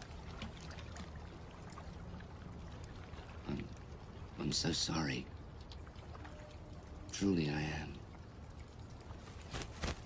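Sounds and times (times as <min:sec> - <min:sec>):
faint low background rumble: 0:00.0 - 0:10.0.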